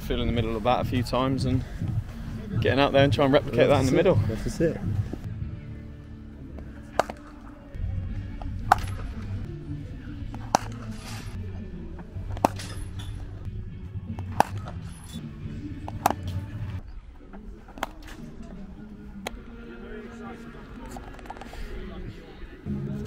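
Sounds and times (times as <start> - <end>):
background music: 0.0 - 23.0
cricket bat striking ball: 7.0 - 7.3, 10.4 - 10.9, 12.3 - 12.8, 14.2 - 14.8, 15.8 - 16.4.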